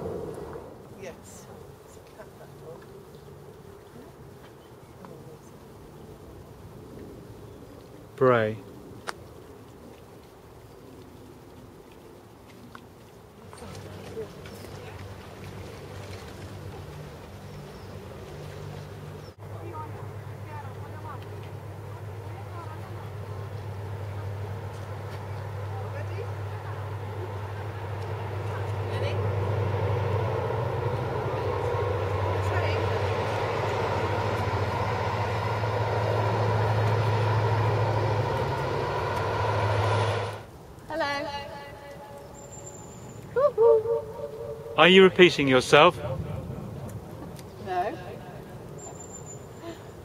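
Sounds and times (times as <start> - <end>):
engine humming: 0.0 - 1.5, 13.2 - 50.0
rushing noise: 29.2 - 40.5.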